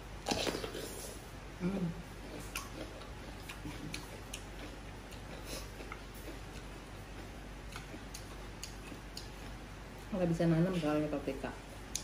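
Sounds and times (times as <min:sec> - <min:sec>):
chewing noodles: 0:02.2 - 0:09.6.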